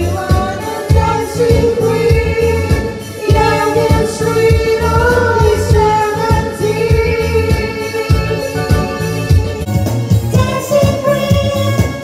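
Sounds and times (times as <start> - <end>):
karaoke singing into microphone: 0.0 - 12.0
pop backing track: 0.0 - 12.0.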